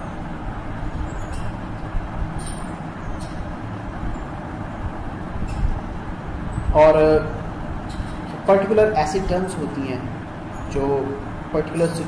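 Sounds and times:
faint hum: 0:00.0 - 0:12.0
voice: 0:06.7 - 0:07.4, 0:08.4 - 0:12.0.

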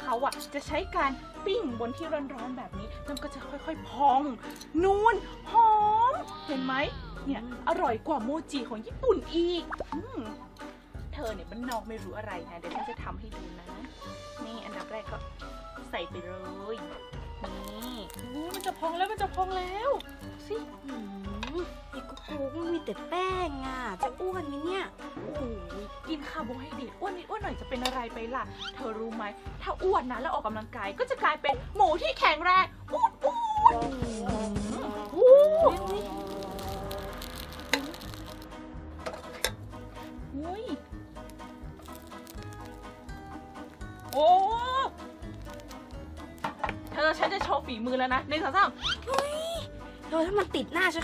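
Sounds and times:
woman speaking: 0:00.0 - 0:10.4, 0:11.1 - 0:15.2, 0:15.9 - 0:32.7, 0:44.1 - 0:45.0, 0:46.9 - 0:51.0
light background music: 0:00.0 - 0:51.0
comic plop sound effect: 0:09.7 - 0:10.2.

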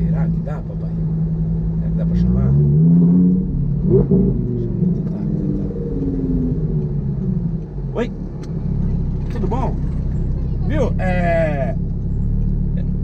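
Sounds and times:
car engine low rumble: 0:00.0 - 0:13.0
road noise: 0:00.0 - 0:13.0.

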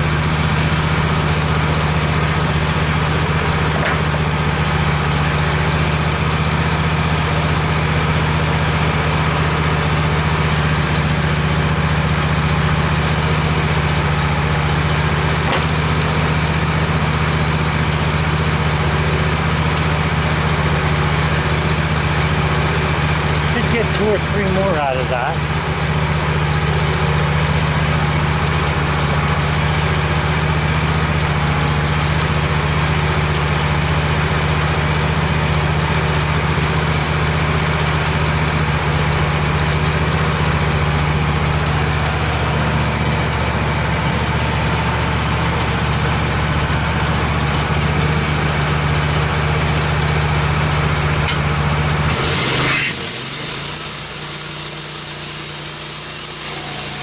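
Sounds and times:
sawmill engine idling: 0:00.0 - 0:57.0
band saw cutting log: 0:15.4 - 0:15.9, 0:23.5 - 0:25.4, 0:52.1 - 0:57.0.

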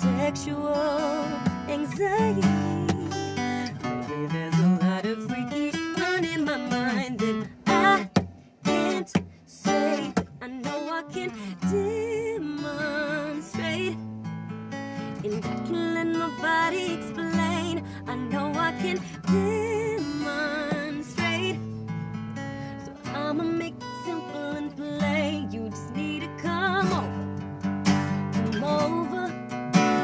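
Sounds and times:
woman singing: 0:00.0 - 0:14.2, 0:15.0 - 0:30.0
acoustic guitar strummed: 0:00.0 - 0:30.0.

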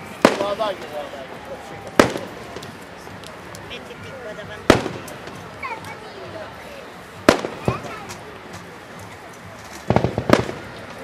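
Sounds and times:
voices chattering: 0:00.0 - 0:11.0
firework shells bursting: 0:09.3 - 0:11.0.

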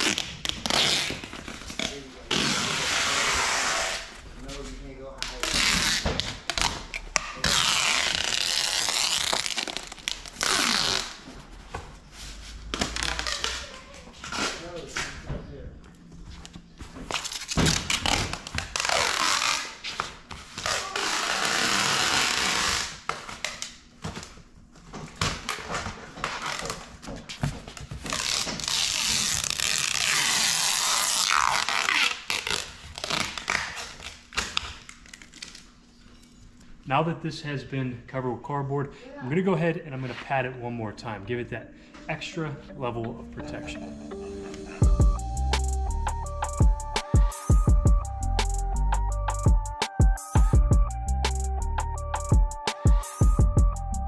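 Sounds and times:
packing tape pulled off roll: 0:00.0 - 0:04.1, 0:05.2 - 0:11.3, 0:12.6 - 0:15.1, 0:17.1 - 0:24.4, 0:25.3 - 0:27.0, 0:27.8 - 0:36.3.

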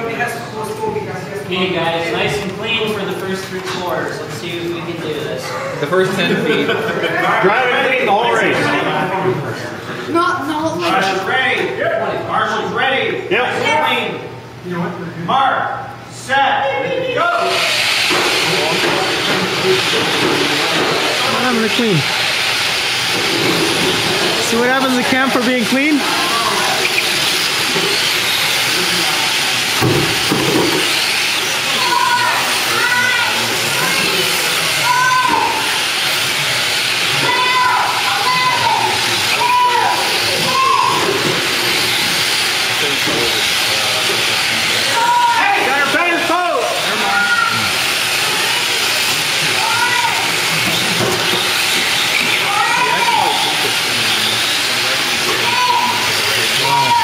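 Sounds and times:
rc car motors whining: 0:17.2 - 0:57.0.

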